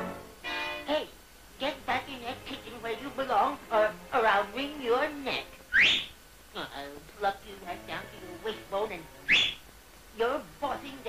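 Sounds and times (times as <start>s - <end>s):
quick rising whistle: 5.7s - 6.1s, 9.3s - 9.6s.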